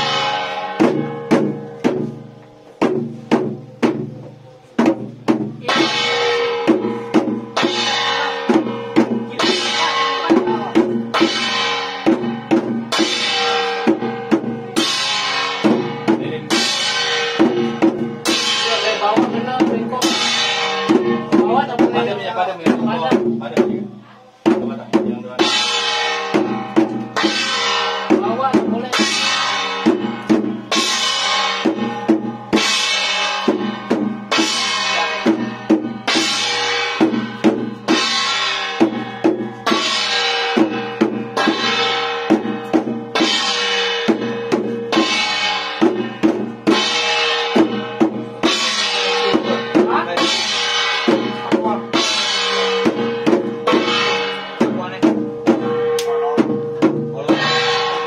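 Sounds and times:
drum beating: 0.0s - 58.0s
ringing metal percussion: 0.0s - 58.0s.

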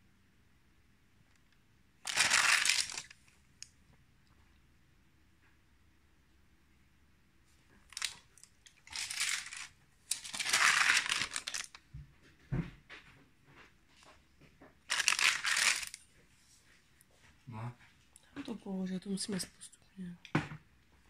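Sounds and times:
paper pages rustling: 2.1s - 3.3s, 7.9s - 11.8s, 14.9s - 16.1s.

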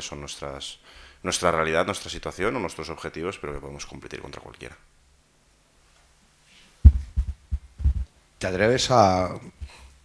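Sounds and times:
low muffled thumps: 6.8s - 8.1s.

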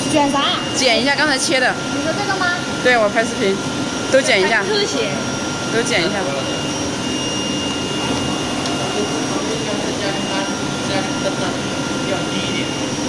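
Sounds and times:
thin high whine: 0.0s - 13.0s
vacuum blower rushing: 5.5s - 13.0s.

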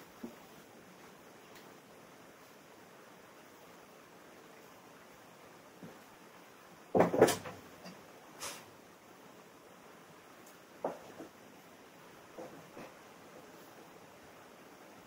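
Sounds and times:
faint room hiss: 0.0s - 15.0s
sharp knocks: 6.9s - 7.6s.

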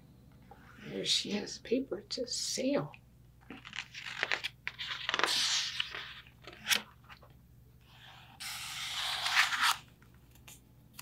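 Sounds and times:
paper pages rustling: 3.4s - 7.3s, 8.0s - 11.0s.

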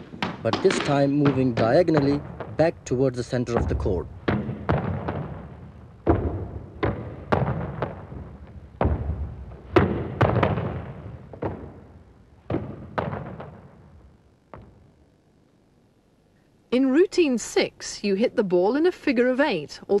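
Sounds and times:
squash ball smacks echoing: 0.1s - 2.6s, 3.5s - 13.9s.

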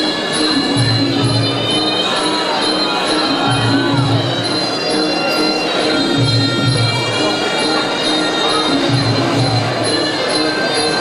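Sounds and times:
drum beats: 0.0s - 11.0s.

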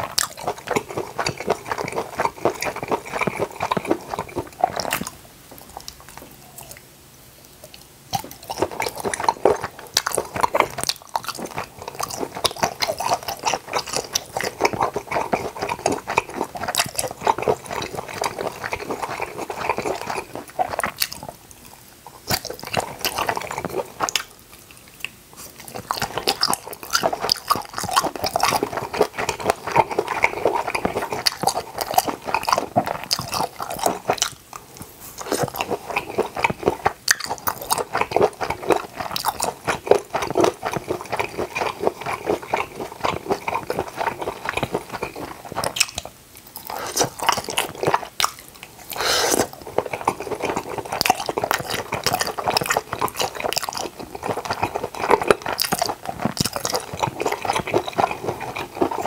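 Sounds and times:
wet chewing and biting: 0.0s - 6.8s, 7.7s - 59.0s.

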